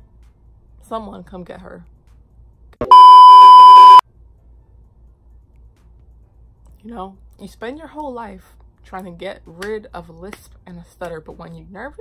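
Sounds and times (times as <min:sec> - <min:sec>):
high test-tone beep: 0:02.8 - 0:04.0.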